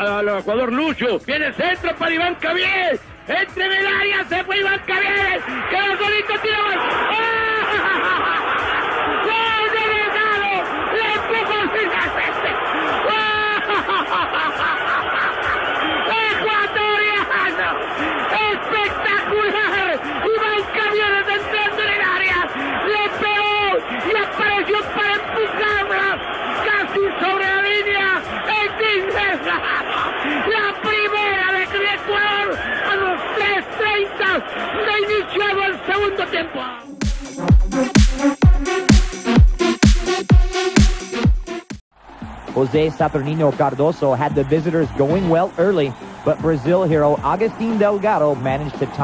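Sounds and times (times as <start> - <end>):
commentator shouting excitedly: 0.0 - 8.4, 9.1 - 14.7, 15.8 - 36.9, 42.6 - 49.0.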